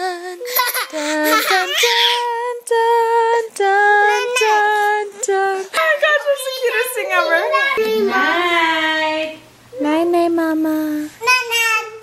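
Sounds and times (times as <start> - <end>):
young child singing: 0.0 - 6.0.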